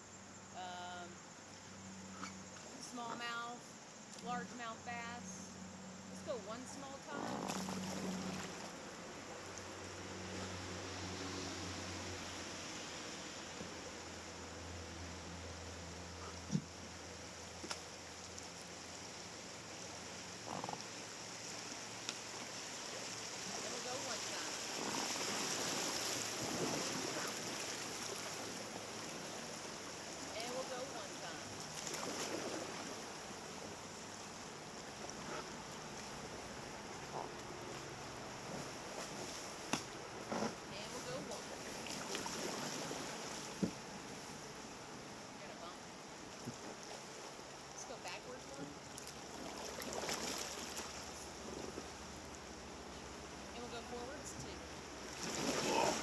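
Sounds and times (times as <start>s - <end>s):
river water rushing: 16.7s - 37.0s, 40.8s - 56.0s.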